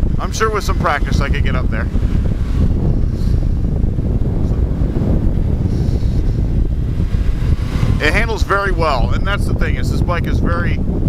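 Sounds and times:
motorcycle engine running: 0.0 - 9.6
wind buffeting microphone: 0.0 - 11.0.

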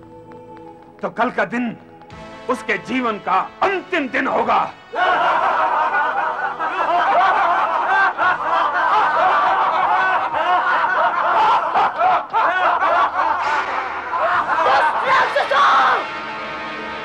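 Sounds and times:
men laughing loudly: 4.9 - 16.0.

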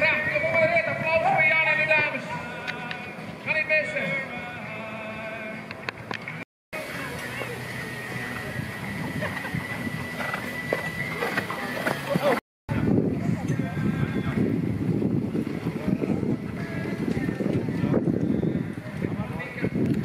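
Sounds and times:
people's voices: 0.0 - 6.1, 6.8 - 20.0
outdoor ambience: 0.0 - 20.0.

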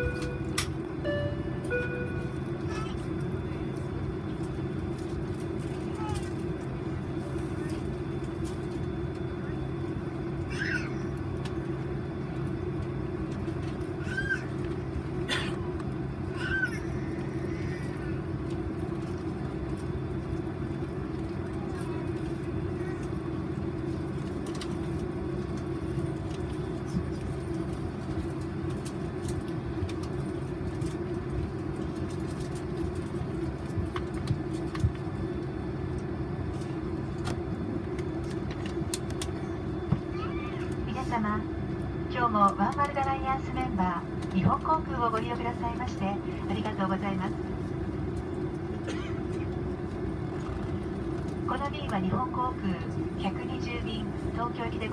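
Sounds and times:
aircraft cabin air-conditioning hum: 0.0 - 54.9.

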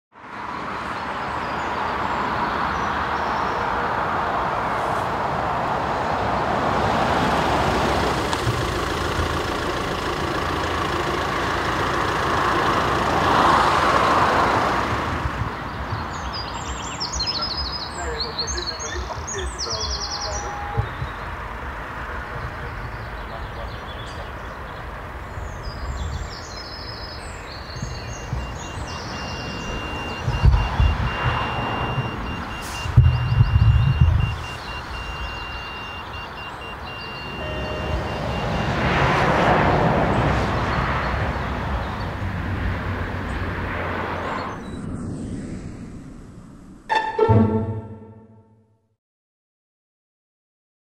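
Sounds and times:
vehicle engine rumble: 0.2 - 48.2
birds chirping: 0.3 - 4.5, 7.6 - 38.7, 43.2 - 45.8
loud low thuds: 30.2 - 32.1, 32.9 - 34.4.

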